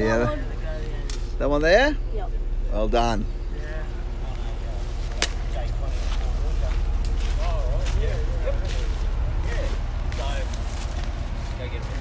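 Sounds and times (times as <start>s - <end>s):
faint distant voices: 0.0s - 12.0s
vehicle engine idling: 0.0s - 12.0s.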